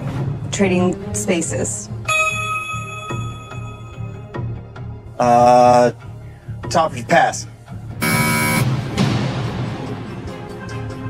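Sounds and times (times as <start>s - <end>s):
background duel music: 0.0s - 11.0s
harsh game show buzzer: 8.0s - 8.7s.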